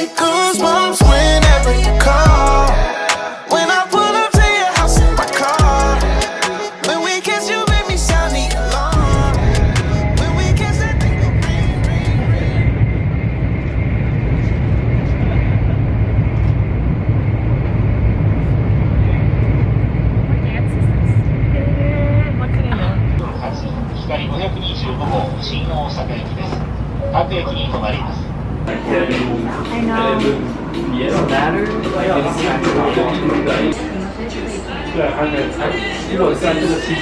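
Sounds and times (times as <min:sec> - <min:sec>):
train cabin low rumble: 0:07.9 - 0:36.6
people's voices: 0:20.2 - 0:37.0.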